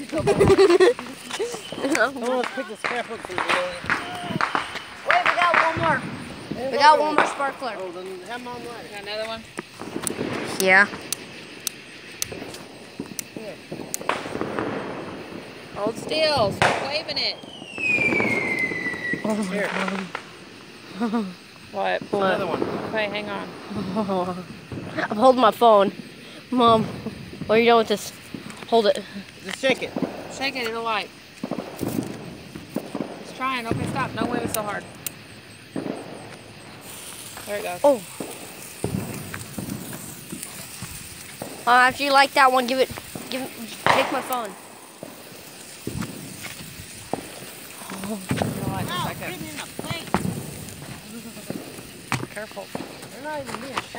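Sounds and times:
firecrackers popping: 0:00.0 - 0:53.9.

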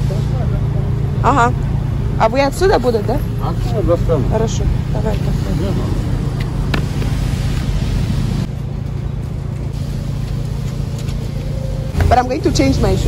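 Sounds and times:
car engine running: 0:00.0 - 0:13.0
road traffic: 0:00.0 - 0:13.0.

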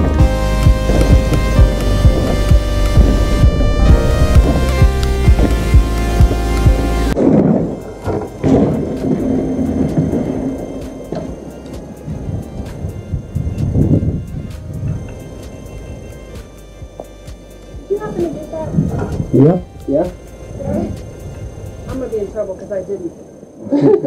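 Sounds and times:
indistinct voices outdoors: 0:14.4 - 0:24.0.

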